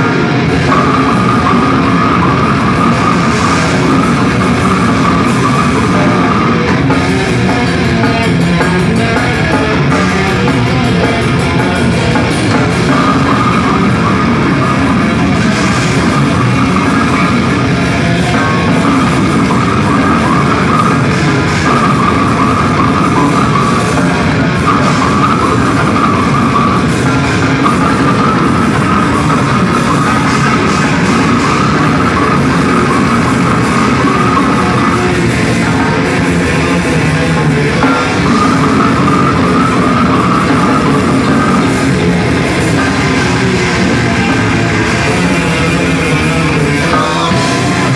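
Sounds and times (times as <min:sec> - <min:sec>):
distorted electric guitars: 0:00.0 - 0:47.9
drum kit: 0:00.0 - 0:47.9.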